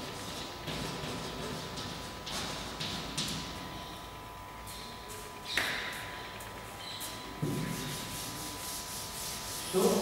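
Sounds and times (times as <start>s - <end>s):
eraser rubbing on blackboard: 7.6s - 10.0s.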